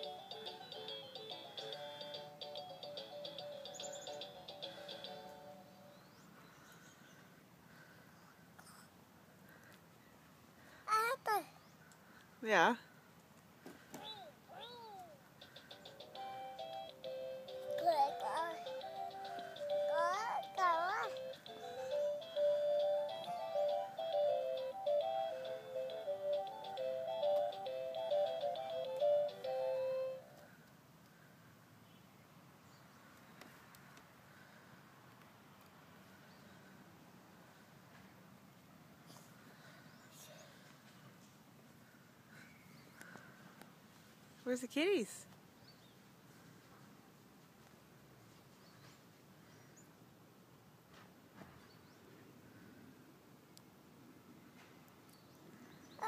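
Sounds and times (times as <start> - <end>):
toy car electronic tune: 0.0 - 5.2, 15.8 - 30.2.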